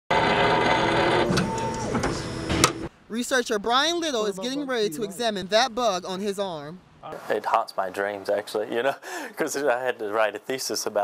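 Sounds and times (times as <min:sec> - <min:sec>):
laboratory machine whirring: 0:00.1 - 0:02.9.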